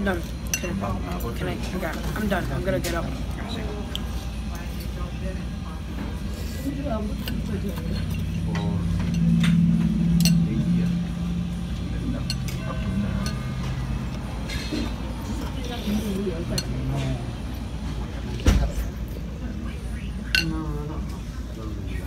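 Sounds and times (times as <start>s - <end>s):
background chatter: 0.0s - 22.0s
utensils clinking on ceramic bowls: 14.4s - 15.0s.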